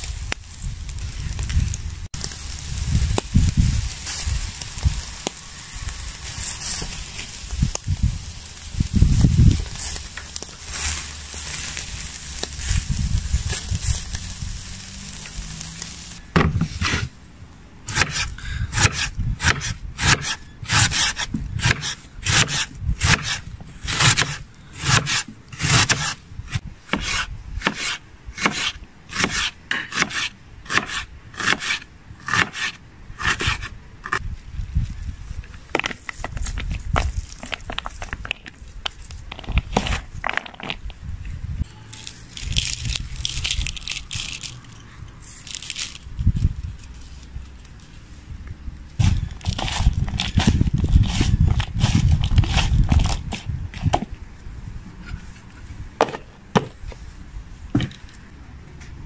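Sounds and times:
meat sizzling over coals: 0.0 - 17.1, 41.7 - 53.5
knife slicing onion on board: 26.9 - 33.7.

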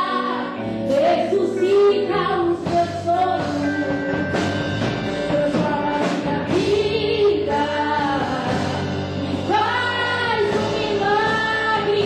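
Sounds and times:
worship music accompaniment: 0.0 - 12.0.

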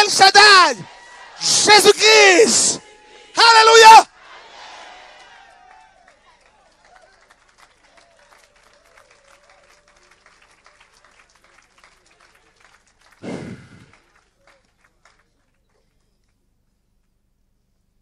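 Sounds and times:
scattered hand clapping: 5.2 - 16.4.

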